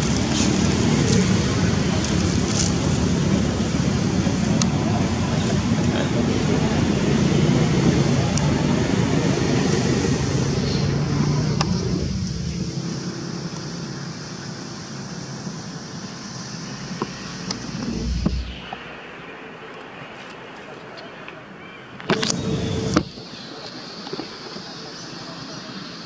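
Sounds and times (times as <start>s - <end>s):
vehicle passing road rumble: 0.0s - 19.6s, 22.2s - 23.2s
short low bump: 16.9s - 19.0s.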